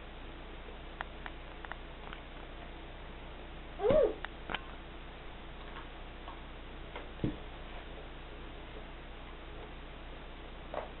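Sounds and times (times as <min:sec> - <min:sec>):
voice-like call: 0:03.8 - 0:04.2.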